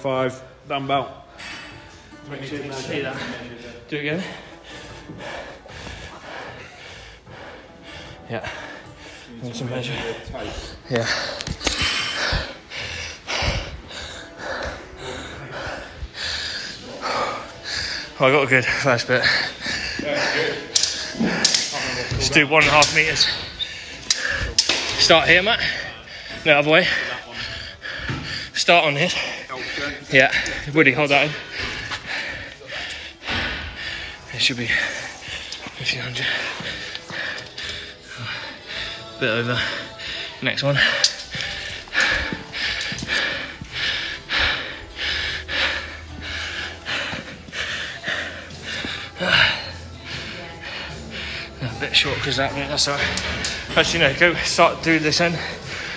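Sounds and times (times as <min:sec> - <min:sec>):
faint music: 0:00.0 - 0:55.9
indistinct background chatter: 0:02.1 - 0:55.9
person breathing heavily: 0:02.9 - 0:55.9.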